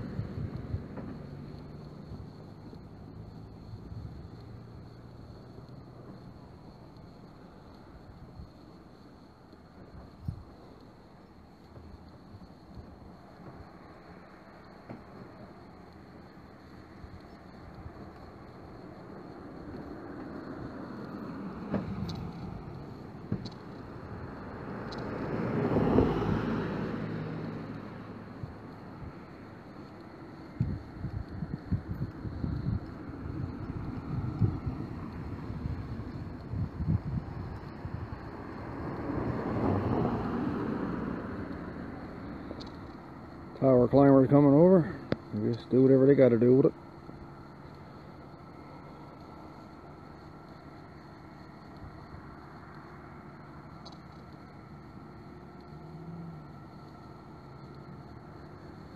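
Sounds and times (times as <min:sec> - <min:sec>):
wind crackling on microphone: 0:00.0 - 0:01.3, 0:30.5 - 0:40.0
car passing: 0:00.0 - 0:58.9.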